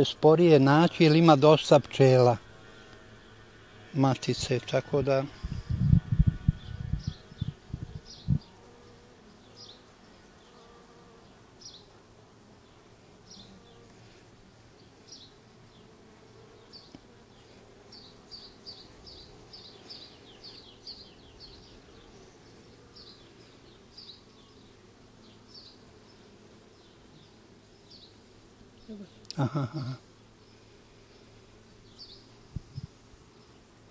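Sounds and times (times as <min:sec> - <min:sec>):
honeybees buzzing: 0:00.0 - 0:33.9.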